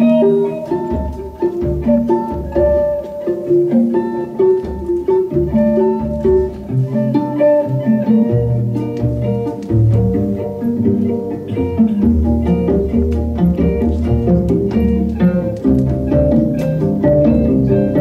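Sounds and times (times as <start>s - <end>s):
cello sustained low notes: 0.0s - 18.0s
electric guitar picking notes: 0.0s - 18.0s.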